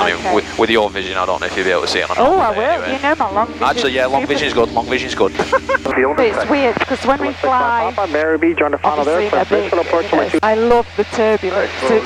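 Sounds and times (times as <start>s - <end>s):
people talking over intercom: 0.0s - 12.0s
steady low hum: 0.0s - 12.0s.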